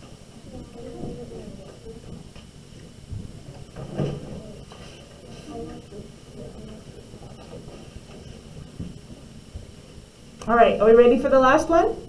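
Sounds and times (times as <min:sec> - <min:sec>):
faint indistinct voices: 0:00.0 - 0:10.3.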